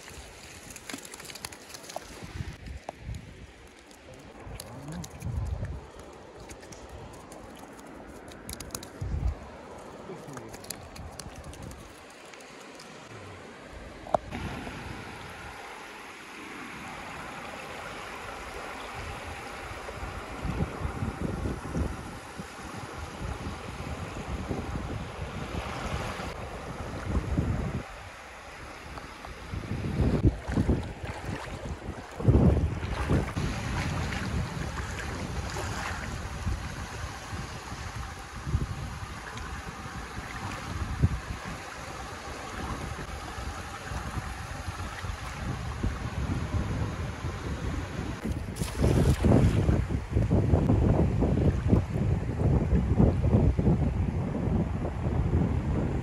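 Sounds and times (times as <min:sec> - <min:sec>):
small waves washing on shore: 0:00.0 - 0:50.4
wind gusting on microphone: 0:04.3 - 0:06.0, 0:08.1 - 0:12.0, 0:18.3 - 0:28.2, 0:28.8 - 0:56.0.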